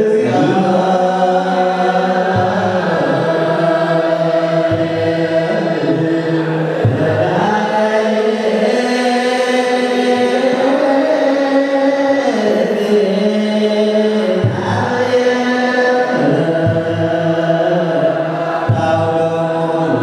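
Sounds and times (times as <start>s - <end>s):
men chanting together: 0.0s - 20.0s.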